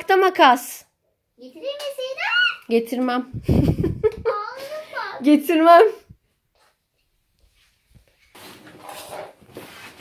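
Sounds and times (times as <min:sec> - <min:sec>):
stiff cardboard rustling and scraping: 0:07.6 - 0:10.0.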